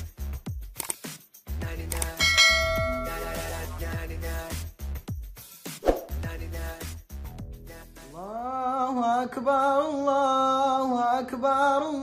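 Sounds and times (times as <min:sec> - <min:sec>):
jingle music with low beat: 0:01.4 - 0:05.5
bright bell chime: 0:02.2 - 0:03.8.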